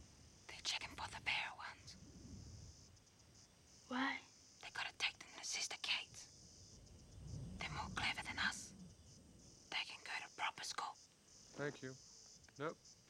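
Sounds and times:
insects droning: 0.0s - 13.0s
whispering voices: 0.5s - 1.9s, 3.9s - 6.2s, 7.6s - 8.7s, 9.7s - 11.0s
faint low murmur: 3.9s - 12.0s.

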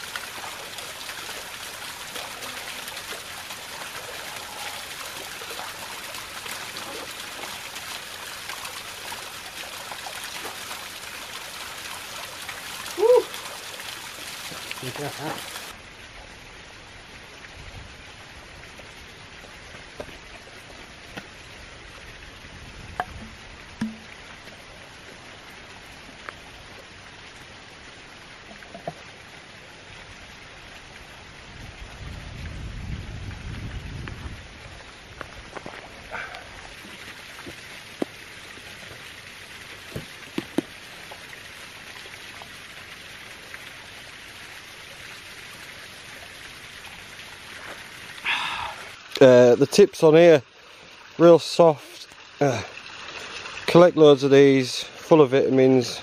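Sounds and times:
small waterfall rushing: 0.0s - 56.0s.

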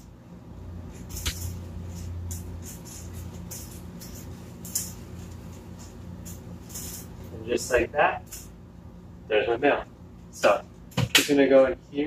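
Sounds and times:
low steady hum: 0.0s - 12.0s
plants rustling and scraping: 0.8s - 8.6s.

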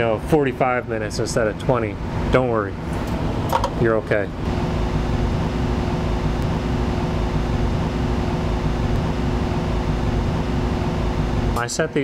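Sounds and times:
blower fan rushing hum: 0.0s - 12.0s
low steady drone: 4.3s - 11.6s.

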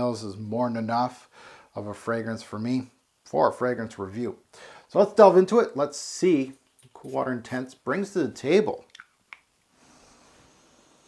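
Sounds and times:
person sniffing: 9.7s - 11.0s.

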